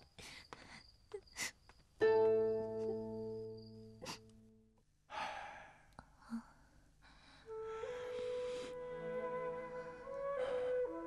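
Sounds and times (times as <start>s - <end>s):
background music held notes: 2.0s - 4.0s, 7.5s - 11.0s.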